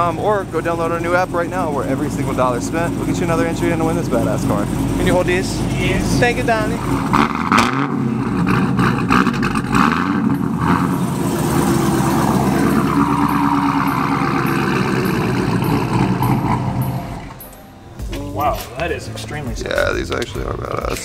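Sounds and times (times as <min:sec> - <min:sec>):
car engine running at low speed: 0:00.0 - 0:17.5.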